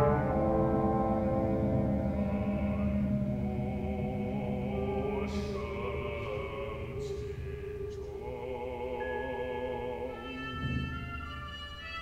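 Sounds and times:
wind ensemble sustained low chord: 0.0s - 7.4s.

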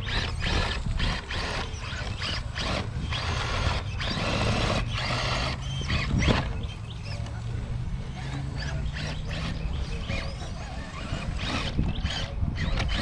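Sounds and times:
toy truck motor whining: 0.0s - 13.0s.

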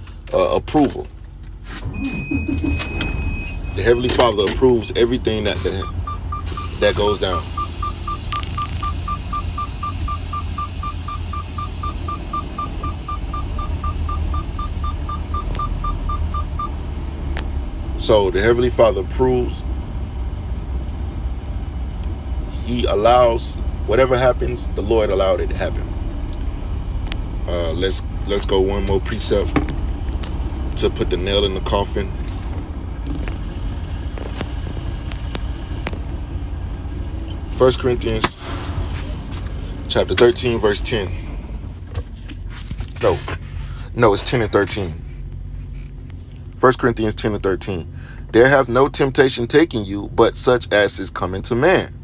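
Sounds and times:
low steady rumble: 0.0s - 52.0s
rapid electronic beeping: 5.6s - 16.8s.

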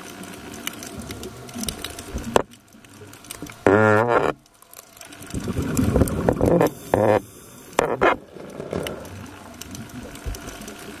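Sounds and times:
low underwater hum: 0.0s - 11.0s.

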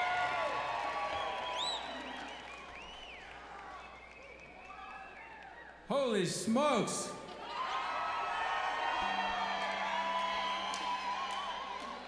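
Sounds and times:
crowd cheering and whooping: 0.0s - 5.8s, 7.3s - 12.0s.

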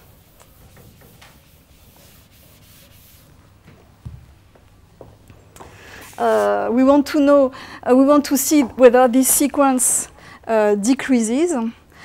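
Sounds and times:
eraser rubbing on chalkboard: 0.0s - 3.3s, 5.9s - 6.6s.

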